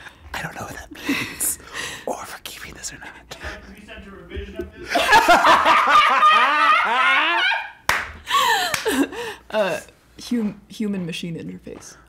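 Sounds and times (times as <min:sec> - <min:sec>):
man and woman laughing: 0:04.6 - 0:09.4
sharp hand clap: 0:07.9 - 0:09.0.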